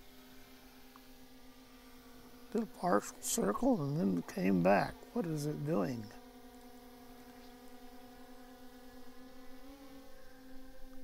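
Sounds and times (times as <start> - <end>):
drone propellers humming: 2.2 - 6.3.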